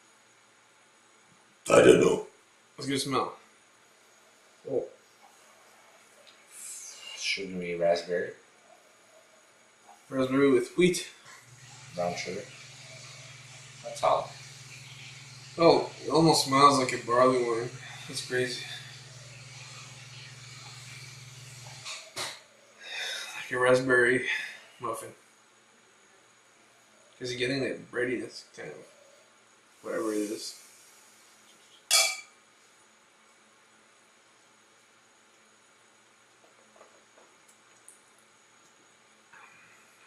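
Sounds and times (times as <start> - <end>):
low hum with hiss: 0.0 - 40.0
glasses clinking: 31.9 - 32.4.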